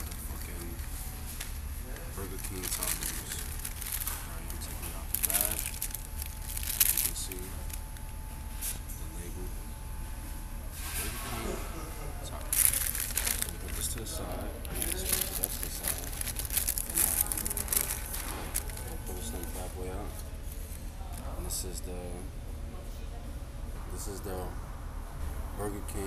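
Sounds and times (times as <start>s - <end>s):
paper bag and wrapper rustling: 0.0s - 8.8s, 12.3s - 21.3s.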